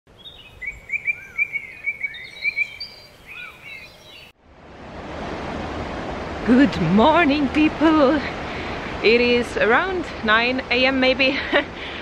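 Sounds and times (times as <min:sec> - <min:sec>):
birds singing: 0:00.1 - 0:04.4
steady rushing noise: 0:04.4 - 0:12.0.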